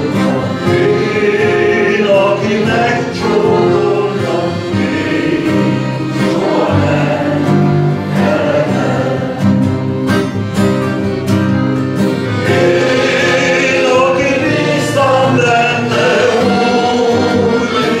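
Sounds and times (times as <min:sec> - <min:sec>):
man singing into microphone: 0:00.0 - 0:04.8, 0:12.5 - 0:18.0
accordion chords: 0:00.0 - 0:18.0
strummed acoustic guitar: 0:00.0 - 0:18.0.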